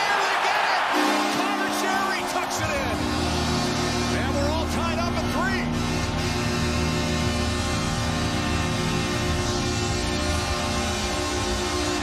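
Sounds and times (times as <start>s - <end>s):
crowd cheering: 0.0s - 4.6s
goal horn sounding: 0.8s - 12.0s.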